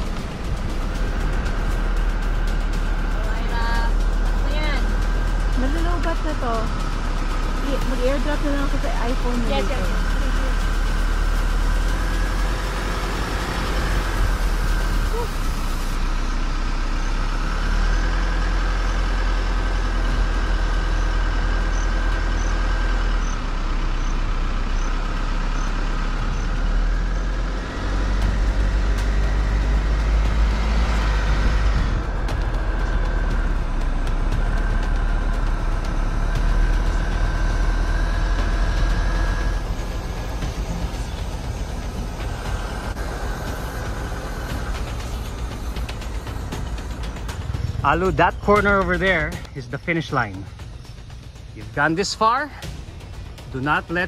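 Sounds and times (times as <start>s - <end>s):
road and wind rumble: 0.0s - 54.0s
steady high whine: 0.0s - 54.0s
vehicle engine running: 0.0s - 54.0s.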